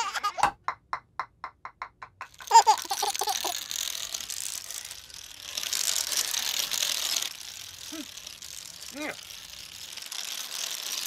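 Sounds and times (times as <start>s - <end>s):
baby giggling: 0.0s - 0.5s, 2.4s - 3.6s
rapid clattering clicks: 1.9s - 11.0s.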